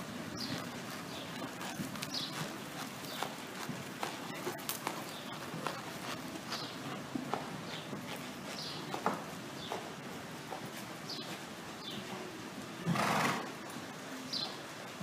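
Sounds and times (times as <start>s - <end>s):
hoofbeats on soft dirt: 0.0s - 15.0s.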